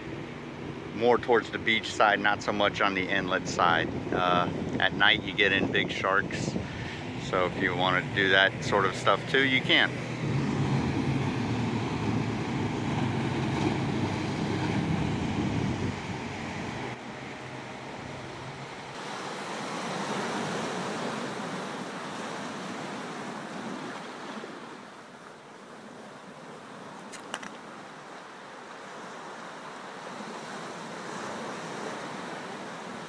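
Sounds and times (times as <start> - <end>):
moving water: 0.0 - 33.0
wind on microphone: 3.4 - 17.0.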